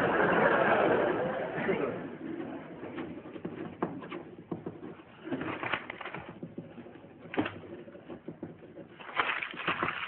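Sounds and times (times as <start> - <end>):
pens scratching on paper: 0.8 - 10.0
faint paper rustling: 2.2 - 10.0.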